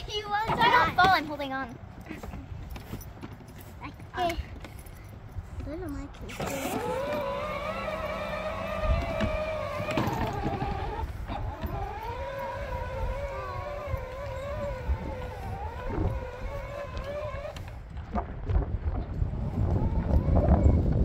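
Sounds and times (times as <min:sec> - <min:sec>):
electric toy motor whining: 0:06.2 - 0:17.8, 0:19.4 - 0:21.0.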